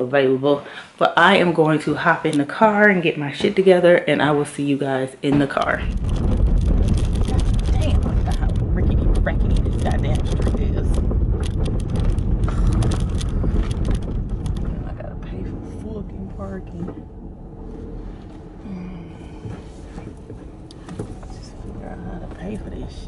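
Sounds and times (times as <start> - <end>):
knocks and rattles: 5.3 - 23.0
car cabin rumble: 5.4 - 23.0.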